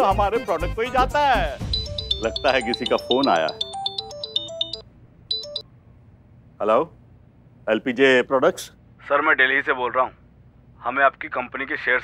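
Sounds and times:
phone ringtone beeping melody: 0:01.6 - 0:05.6.

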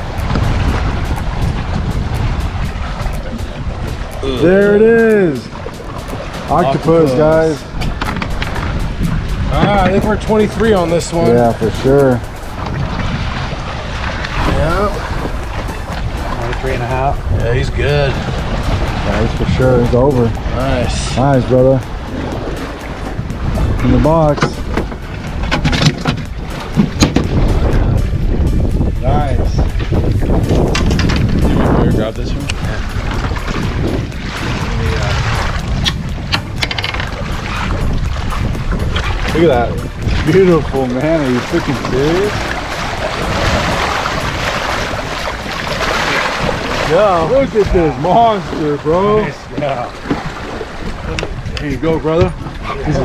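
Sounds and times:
boat motor rumble: 0:00.0 - 0:53.0
wind: 0:00.0 - 0:53.0.

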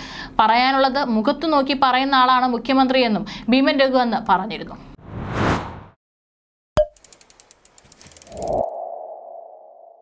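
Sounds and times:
quick run of ticks: 0:07.0 - 0:08.6.

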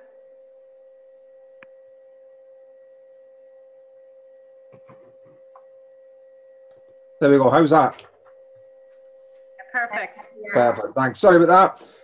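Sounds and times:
faint electronic whine: 0:00.0 - 0:12.0.

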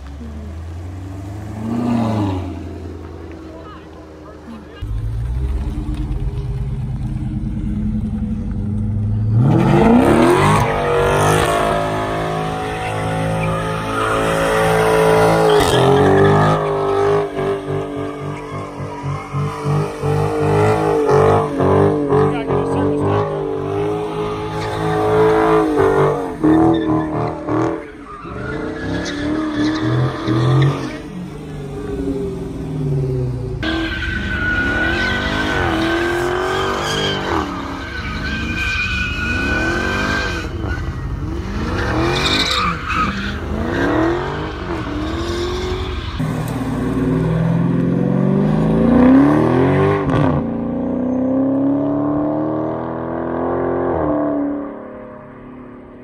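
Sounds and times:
car engines revving: 0:00.0 - 0:56.0
tyres squealing: 0:12.3 - 0:21.4, 0:33.6 - 0:46.2.

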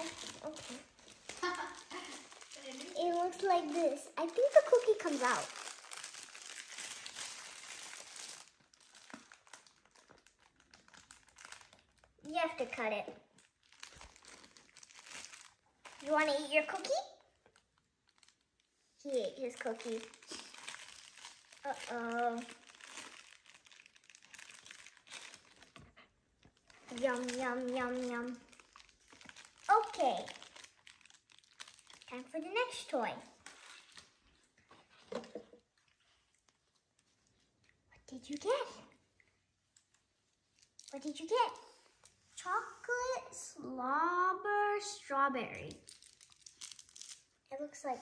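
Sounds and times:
tissue paper rustling: 0:00.0 - 0:16.9, 0:19.1 - 0:35.4
plastic bag crinkling: 0:00.0 - 0:37.5, 0:39.6 - 0:42.3, 0:45.6 - 0:47.4.

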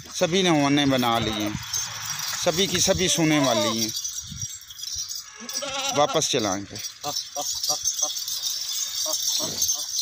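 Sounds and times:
goat bleating: 0:02.8 - 0:03.9, 0:05.3 - 0:06.3.

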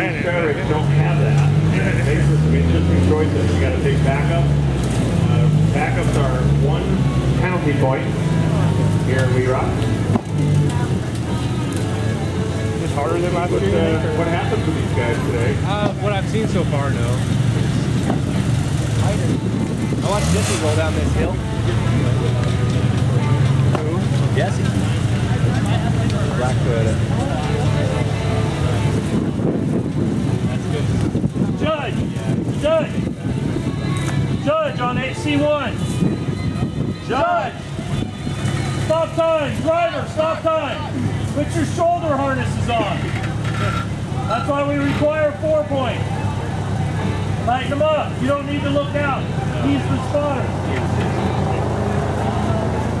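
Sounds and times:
engine running low: 0:00.0 - 0:53.0
faint voices: 0:00.0 - 0:53.0
people talking: 0:00.0 - 0:53.0.

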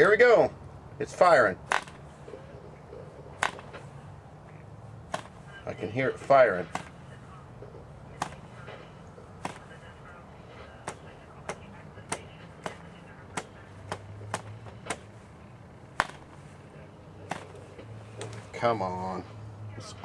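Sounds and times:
propeller flip clicks: 0:01.6 - 0:02.4, 0:03.3 - 0:05.4, 0:10.8 - 0:18.6.

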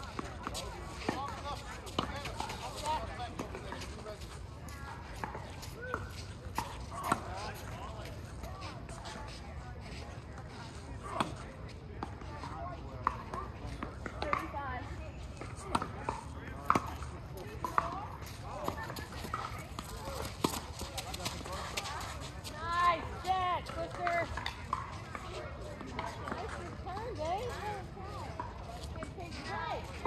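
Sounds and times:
faint voices: 0:00.0 - 0:30.0
footsteps on hard court: 0:15.4 - 0:30.0.

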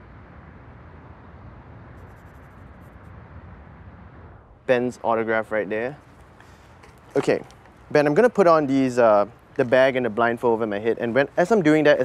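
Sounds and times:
low background rumble: 0:00.0 - 0:08.0
marker pen scratching on tape: 0:02.0 - 0:03.1.

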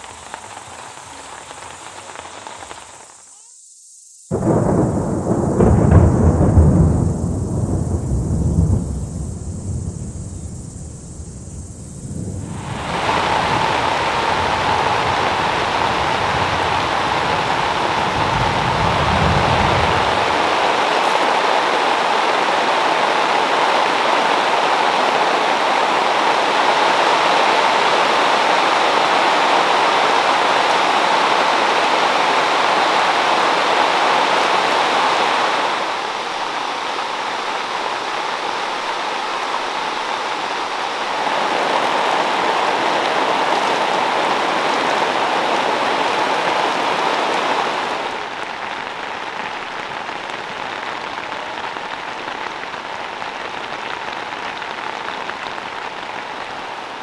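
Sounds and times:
heavy rain hissing: 0:00.0 - 0:57.0.

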